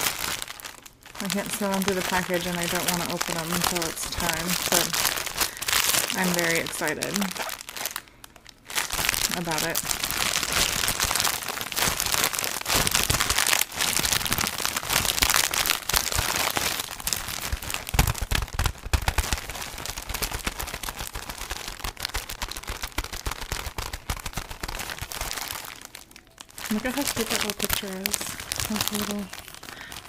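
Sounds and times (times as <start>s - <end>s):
plastic wrapping crinkling: 0.0s - 30.0s.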